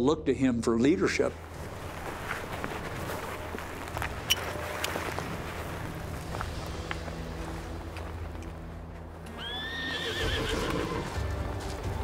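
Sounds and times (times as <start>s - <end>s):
horse whinnying: 9.4s - 11.2s.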